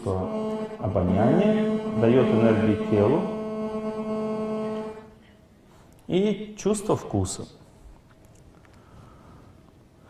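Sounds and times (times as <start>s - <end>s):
man holding drawn-out vowel: 0.0s - 5.0s
faint hum: 0.0s - 6.1s.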